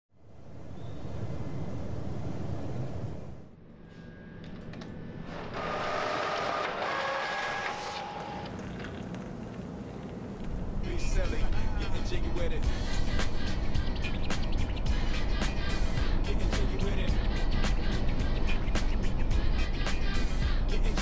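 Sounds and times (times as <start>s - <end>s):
printer whine feeding paper: 5.3s - 9.4s.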